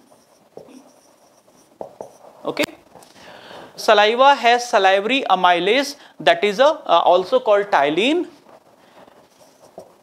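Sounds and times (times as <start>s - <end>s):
marker writing on whiteboard: 0.0s - 2.7s, 8.4s - 10.0s
person speaking: 2.4s - 2.9s, 3.8s - 8.5s.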